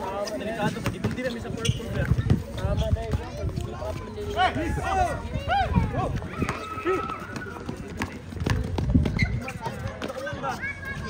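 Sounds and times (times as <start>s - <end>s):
running footsteps: 0.0s - 11.0s
basketball bouncing on hard court: 0.8s - 1.3s, 8.0s - 9.3s
players shouting: 4.2s - 8.2s.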